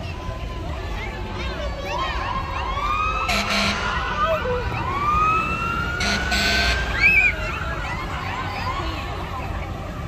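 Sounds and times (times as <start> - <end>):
emergency siren wailing: 1.8 - 10.0.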